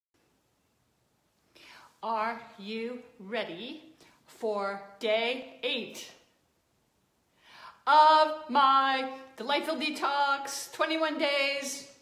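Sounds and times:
faint room hiss: 0.2 - 12.0
breathy in-breath: 1.5 - 2.0, 7.3 - 7.8
person speaking: 2.0 - 6.2.

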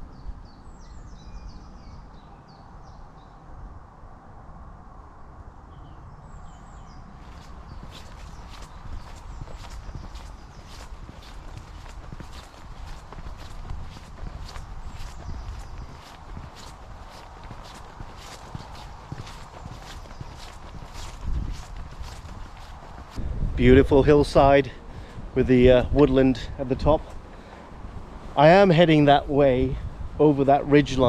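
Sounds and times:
footsteps on dirt path: 7.1 - 23.3.

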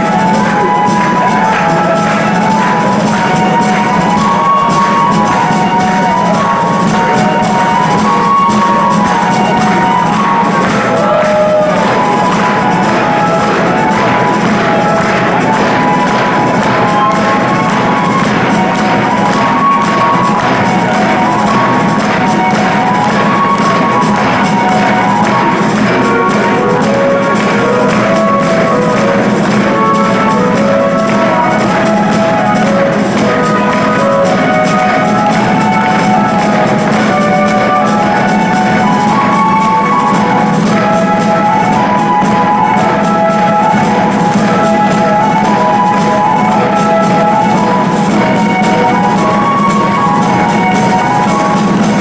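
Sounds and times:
drum rhythm: 0.0 - 52.0
flute melody: 0.0 - 52.0
keyboard chords: 0.0 - 52.0.

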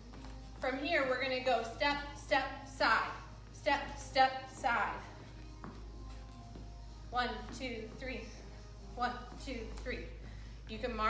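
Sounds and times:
footsteps on wooden floor: 0.0 - 0.8, 4.5 - 8.2
faint background music: 0.0 - 11.0
low steady hum: 0.0 - 11.0.

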